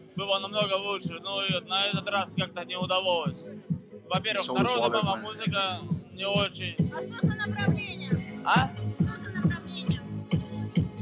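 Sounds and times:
club dance music with kick drum: 0:00.0 - 0:11.0
young man speaking: 0:00.2 - 0:03.4, 0:04.1 - 0:06.9, 0:08.4 - 0:08.8.

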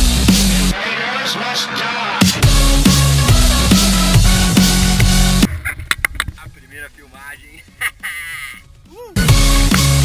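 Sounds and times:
electronic background music: 0:01.6 - 0:10.0
man exclaiming: 0:08.8 - 0:09.3.

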